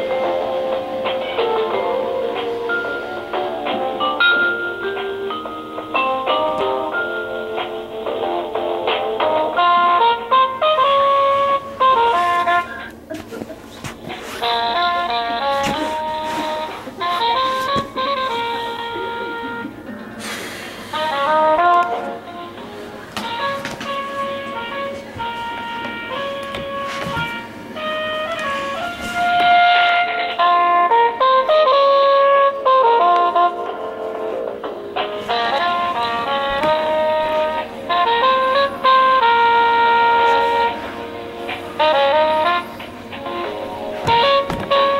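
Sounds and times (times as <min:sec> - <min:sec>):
instrumental melody with backing: 0:00.0 - 0:44.9.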